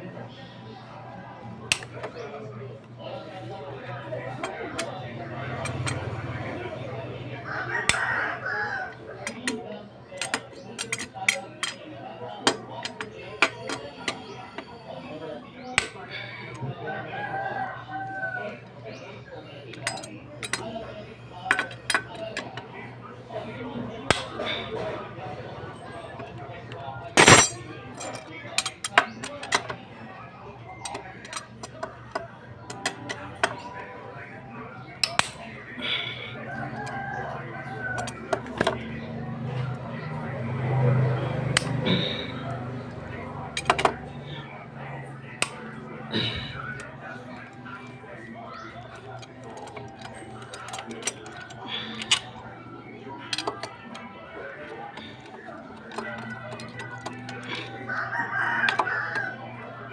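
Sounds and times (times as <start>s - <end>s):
rooster crowing: 7.4s - 9.3s, 16.8s - 18.6s, 36.4s - 38.3s, 57.5s - 59.8s.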